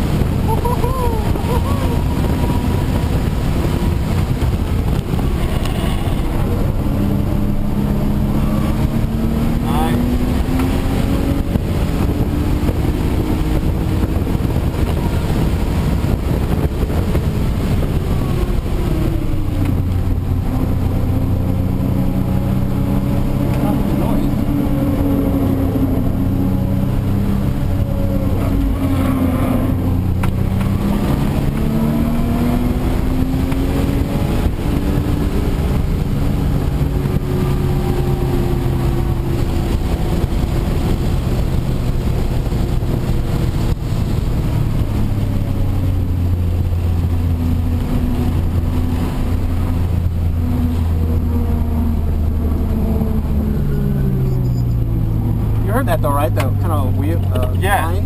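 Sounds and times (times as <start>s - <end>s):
car engine accelerating: 0.0s - 58.0s
road and tyre noise: 0.0s - 58.0s.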